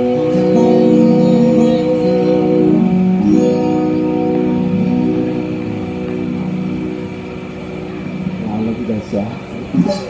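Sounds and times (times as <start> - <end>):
band chord ringing out: 0.0 - 9.2.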